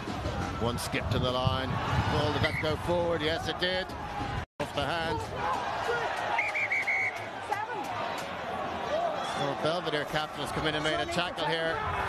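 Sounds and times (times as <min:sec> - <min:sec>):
referee's whistle blasts: 0:06.4 - 0:07.2.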